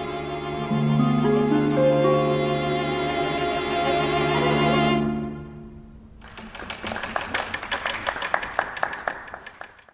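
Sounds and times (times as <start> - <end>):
bowed strings chord: 0.0 - 6.2
small group clapping: 6.2 - 9.9.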